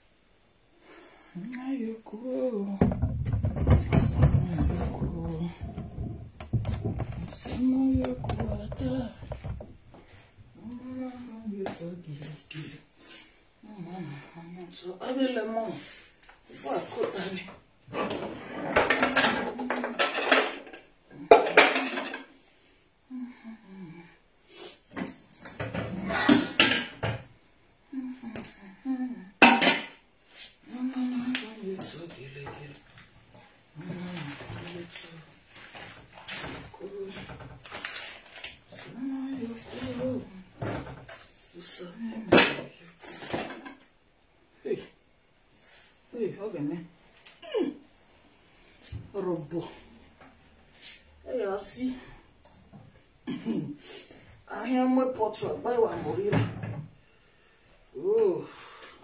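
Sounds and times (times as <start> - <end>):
metal pots and pans clattering: 2.8 - 9.8, 17.9 - 22.4, 25.5 - 27.3, 29.4 - 30.0, 42.3 - 43.8.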